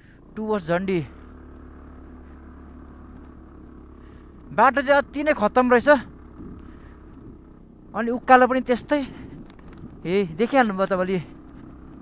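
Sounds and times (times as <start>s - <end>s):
motorcycle engine running: 0.0s - 12.0s
man speaking: 0.4s - 1.2s, 4.5s - 6.1s, 7.9s - 9.2s, 10.0s - 11.4s.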